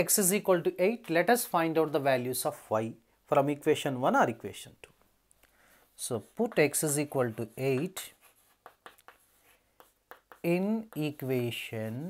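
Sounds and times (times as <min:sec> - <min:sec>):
chalk writing on chalkboard: 0:05.8 - 0:12.0.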